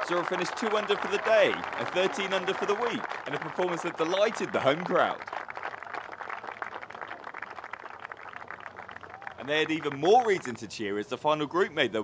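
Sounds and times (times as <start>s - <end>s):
spectators applauding: 0.0s - 10.6s.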